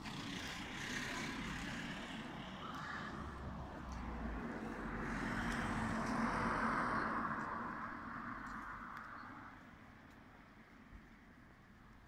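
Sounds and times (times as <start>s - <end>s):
car passing: 0.0s - 9.0s.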